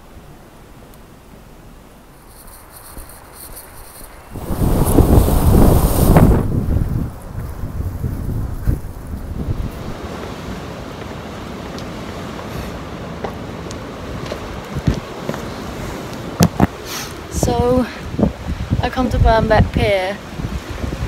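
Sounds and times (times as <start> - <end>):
wind buffeting microphone: 2.8 - 21.0.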